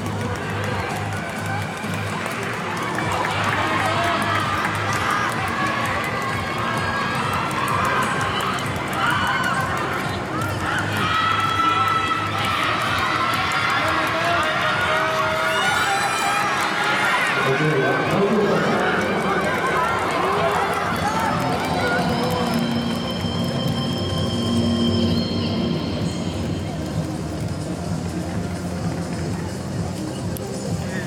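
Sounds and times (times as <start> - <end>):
crowd shouting and cheering: 0.0 - 31.0.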